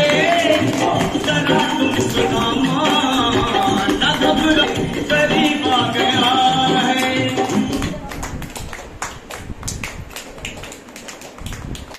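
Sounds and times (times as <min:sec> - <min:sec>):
people clapping unevenly: 0:00.0 - 0:11.9.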